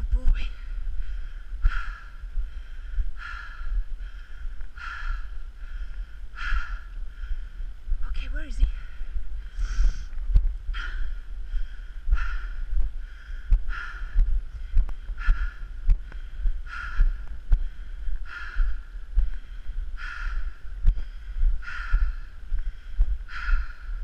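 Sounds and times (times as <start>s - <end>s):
person breathing hard: 0.6s - 8.0s, 8.7s - 24.0s.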